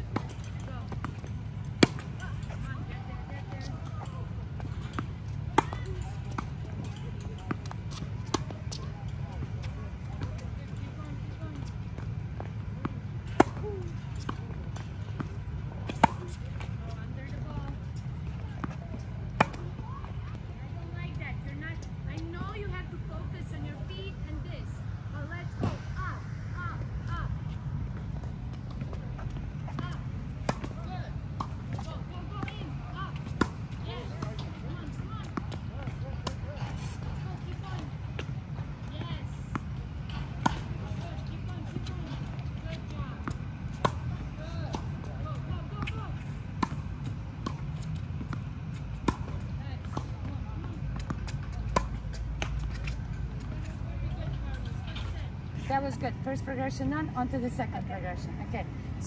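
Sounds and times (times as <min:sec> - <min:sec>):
tennis balls struck by rackets: 0:00.0 - 0:22.8, 0:27.1 - 0:58.8
low outdoor rumble: 0:00.0 - 0:59.0.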